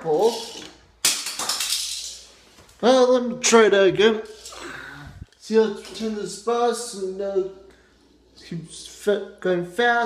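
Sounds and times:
toy car clattering on stone: 0:00.2 - 0:02.3.

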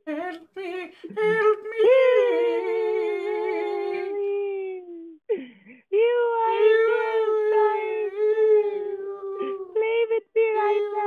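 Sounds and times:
man wailing fake crying: 0:06.0 - 0:11.0.

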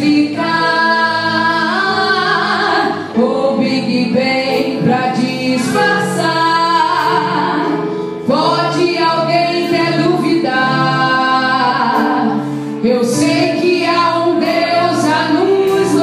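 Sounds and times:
keyboard: 0:00.0 - 0:16.0
woman singing into microphone: 0:00.0 - 0:16.0.

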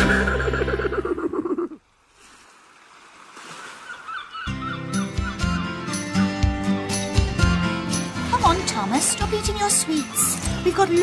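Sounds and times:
theme tune music: 0:00.0 - 0:01.2
seagull cries: 0:03.8 - 0:06.0.

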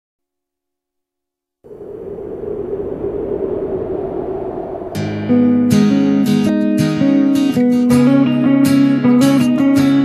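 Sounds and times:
rushing rumbling noise: 0:01.6 - 0:06.8.

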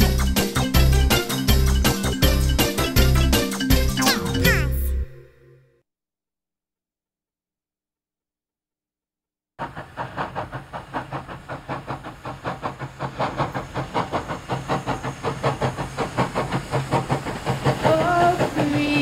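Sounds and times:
steam locomotive chuffing: 0:00.0 - 0:04.0, 0:09.6 - 0:19.0.

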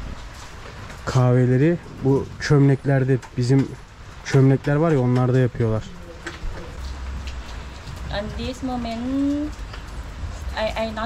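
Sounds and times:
rain drop ticks: 0:00.0 - 0:11.0
steady rain falling: 0:00.0 - 0:11.0.

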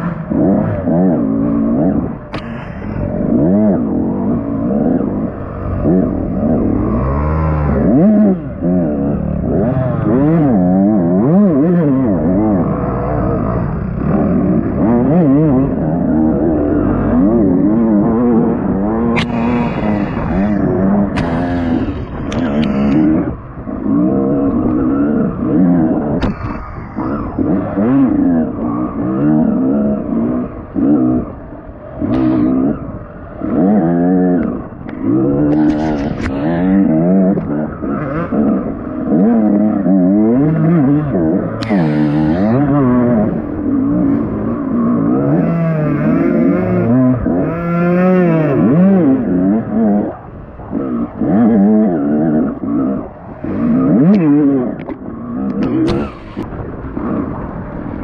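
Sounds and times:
dirt bike engine revving: 0:00.0 - 0:58.0
sharp clicks: 0:19.0 - 0:23.2.

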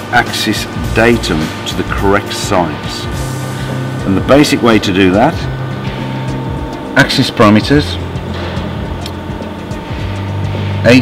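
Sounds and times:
low machine hum: 0:00.0 - 0:11.0.

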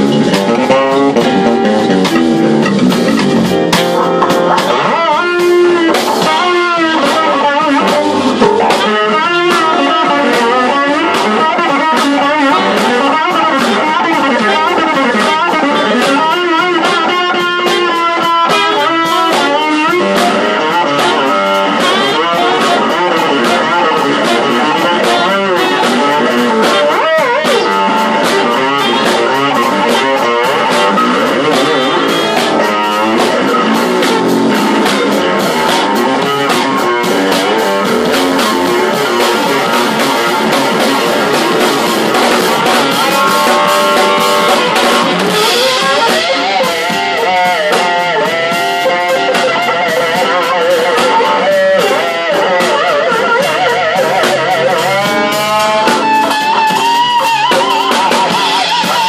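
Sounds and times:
drum kit: 0:00.0 - 0:59.0
fretless bass solo: 0:00.0 - 0:59.0.

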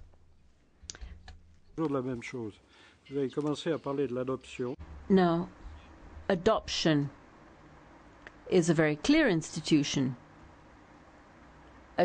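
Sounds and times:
low steady hum: 0:00.0 - 0:12.0
person speaking: 0:01.8 - 0:05.6, 0:06.3 - 0:07.2.

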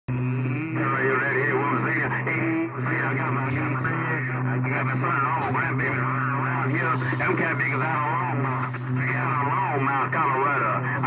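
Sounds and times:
low hum: 0:00.1 - 0:11.0
voice over radio: 0:00.4 - 0:11.0.

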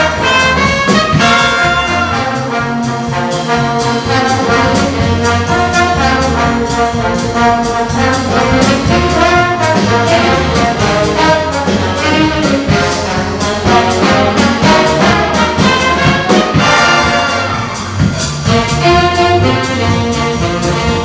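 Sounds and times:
drum kit steady beat: 0:00.0 - 0:21.0
saxophones: 0:00.0 - 0:21.0
trombones: 0:00.0 - 0:21.0
trumpets: 0:00.0 - 0:21.0
upright bass: 0:00.0 - 0:21.0.

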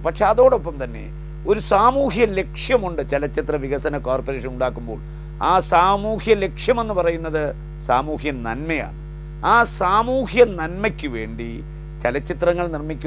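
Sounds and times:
man speaking: 0:00.0 - 0:13.0
steady low hum: 0:00.0 - 0:13.0.

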